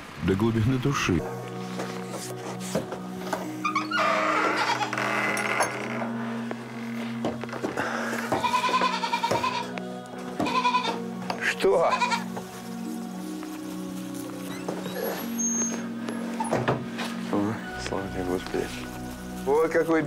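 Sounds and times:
background music: 0.0s - 20.0s
goat bleating: 4.5s - 4.9s, 8.3s - 9.7s, 10.4s - 11.0s, 11.8s - 12.4s.

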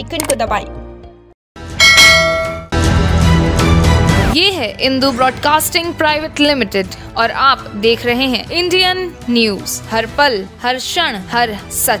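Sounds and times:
bright metallic chime: 1.8s - 2.7s.

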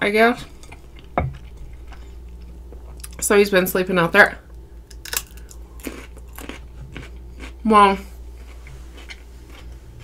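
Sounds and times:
crunchy chewing: 4.9s - 10.0s.

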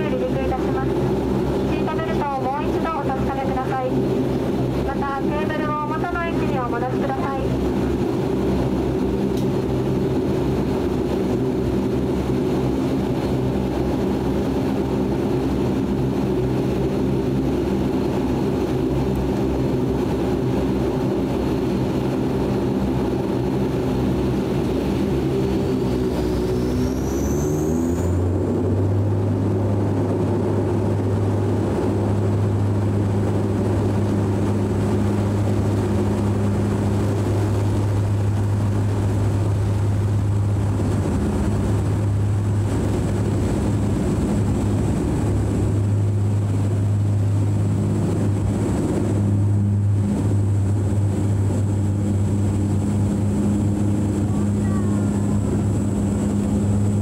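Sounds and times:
propeller engine drone: 0.0s - 57.0s.

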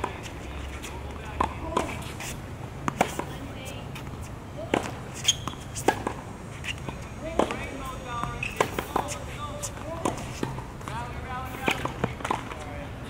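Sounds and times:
tennis rackets striking ball: 0.0s - 12.7s
tennis ball bouncing: 0.0s - 12.9s.

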